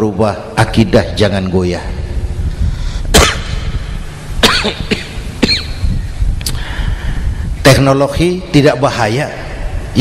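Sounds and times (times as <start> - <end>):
steady low rumble: 0.0 - 10.0
man coughing: 3.1 - 3.5, 4.4 - 5.8.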